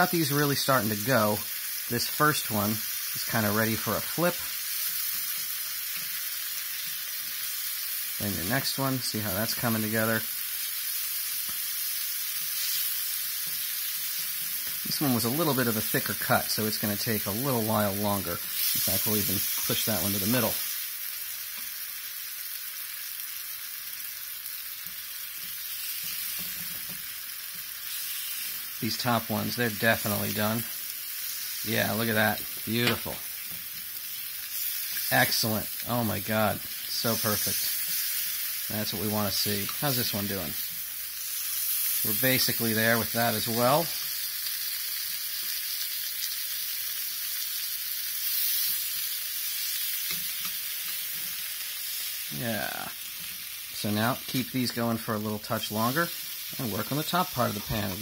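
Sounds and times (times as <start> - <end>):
meat sizzling in frying pan: 0.0 - 58.0.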